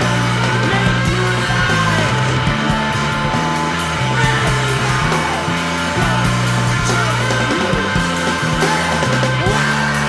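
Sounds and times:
bass holding long low notes: 0.0 - 10.0
electric guitar: 0.0 - 10.0.

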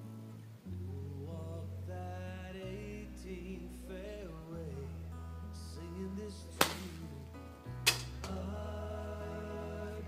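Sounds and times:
golf club striking ball: 6.6 - 7.0, 7.8 - 8.4.

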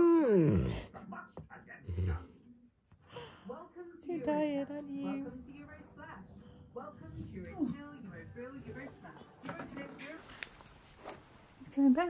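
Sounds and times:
dog humming moan: 0.0 - 0.8.

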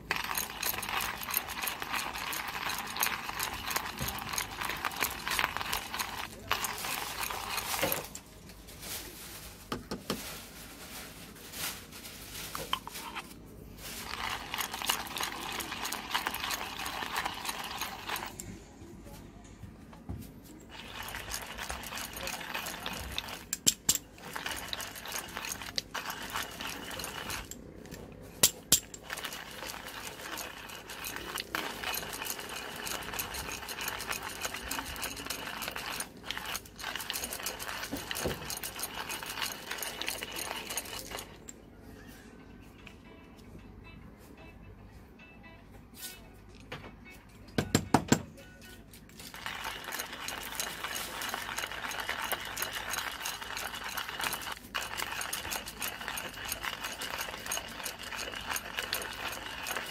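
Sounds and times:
hand coffee grinder grinding beans: 0.0 - 8.3, 12.5 - 18.7, 20.5 - 41.6, 49.0 - 59.9.

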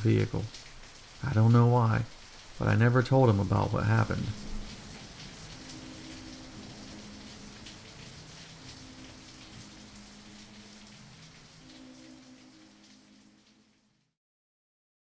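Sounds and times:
steady rain falling: 0.0 - 14.2.

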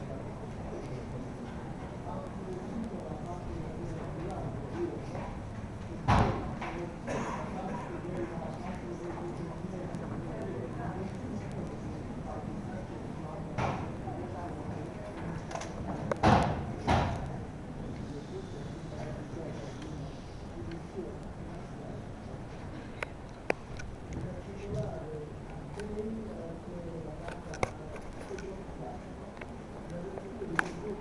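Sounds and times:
murmur of voices: 0.0 - 31.0.

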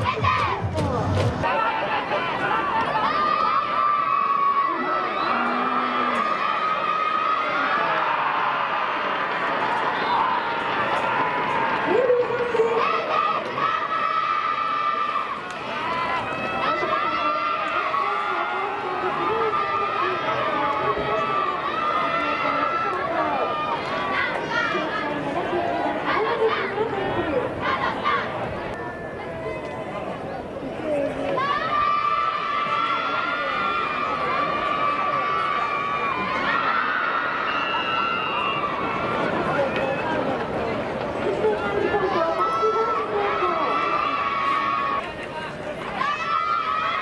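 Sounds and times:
crowd shouting and cheering: 0.0 - 47.0.

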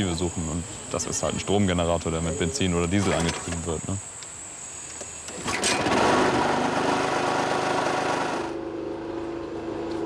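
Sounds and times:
petrol generator engine running: 5.8 - 10.0.

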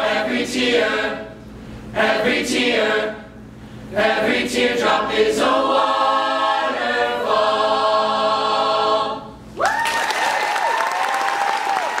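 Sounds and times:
mixed choir singing a cappella: 0.0 - 9.4
audience applause and cheering: 9.6 - 12.0.

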